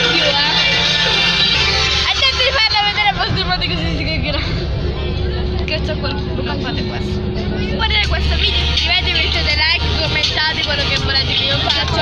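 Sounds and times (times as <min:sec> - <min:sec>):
bus engine rumble: 0:00.0 - 0:12.0
young passengers chattering: 0:00.0 - 0:12.0.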